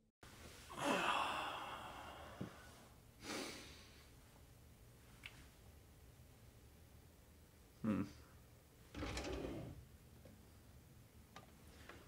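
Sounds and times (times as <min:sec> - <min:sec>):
man sighing: 0:00.7 - 0:03.8, 0:07.8 - 0:08.2.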